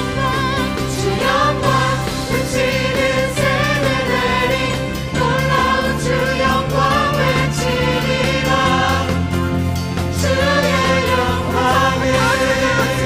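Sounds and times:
group singing worship song: 0.0s - 9.4s, 10.0s - 13.0s
band with bass and drums: 0.0s - 13.0s.

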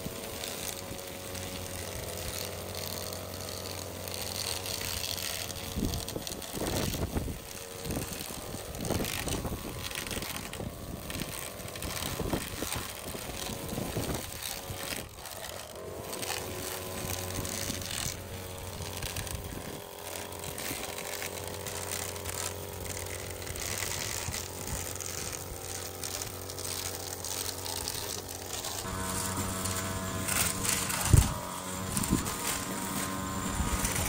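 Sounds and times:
grass crackling: 0.0s - 34.0s
string trimmer running: 0.0s - 34.0s.

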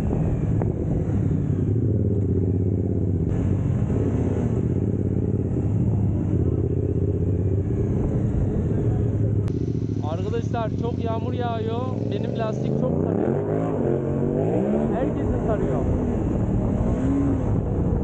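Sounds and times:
motorcycle engine droning: 0.0s - 18.0s.

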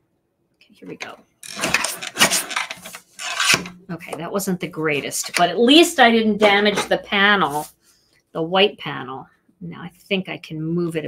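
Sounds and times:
paper trimmer blade scraping: 1.4s - 3.7s.

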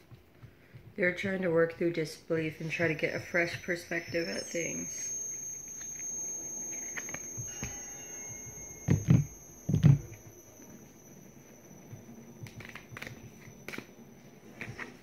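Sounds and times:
thin high whine: 2.3s - 15.0s
dull thumps: 6.7s - 14.0s.

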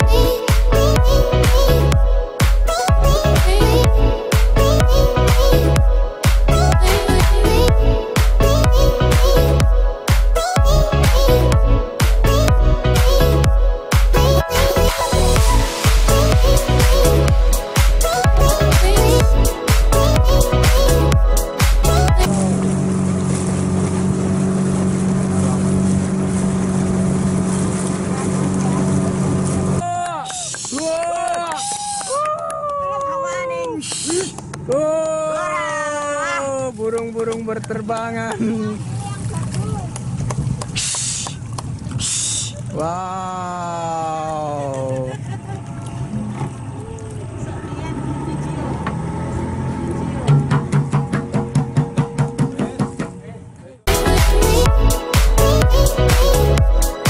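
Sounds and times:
water rushing: 0.0s - 31.8s, 33.8s - 53.2s
boat engine humming: 0.0s - 57.0s
wind: 22.3s - 53.9s.

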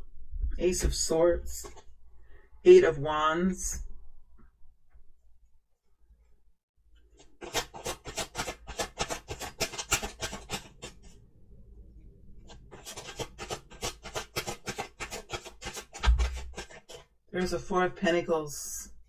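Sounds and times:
cards being shuffled: 7.1s - 11.1s, 12.5s - 17.0s.

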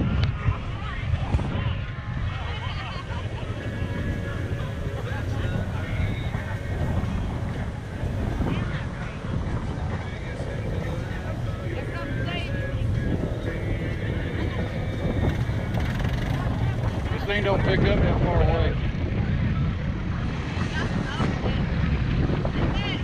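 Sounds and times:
atv engine running: 0.0s - 23.0s.

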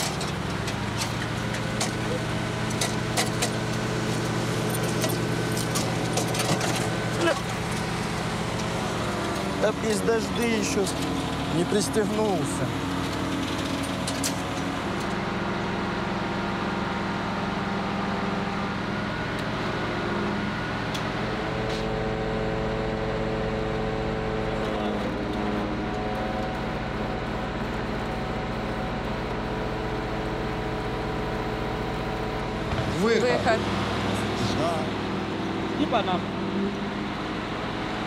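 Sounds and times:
truck engine running: 0.0s - 38.0s.

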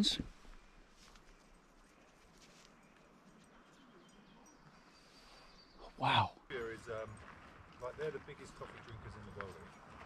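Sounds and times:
faint outdoor ambience: 0.0s - 10.0s.

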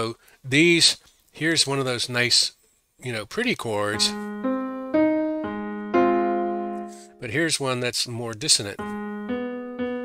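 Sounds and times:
piano sustained chords: 3.9s - 7.2s, 8.8s - 10.0s.

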